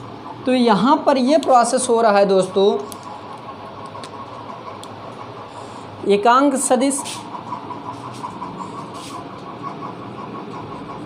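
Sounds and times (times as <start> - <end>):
engine-like hum: 0.0 - 11.0.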